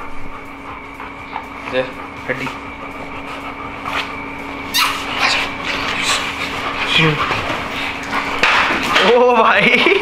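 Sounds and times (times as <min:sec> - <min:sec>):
steady low hum: 0:00.0 - 0:10.0
dog whimpering: 0:04.6 - 0:08.1.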